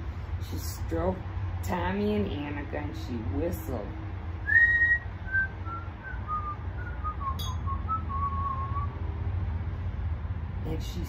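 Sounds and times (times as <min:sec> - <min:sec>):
person whistling a tune: 0:04.5 - 0:09.0.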